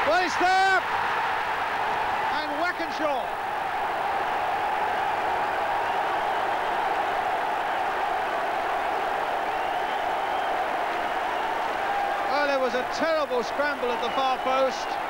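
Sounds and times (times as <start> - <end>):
stadium crowd cheering: 0.0 - 15.0.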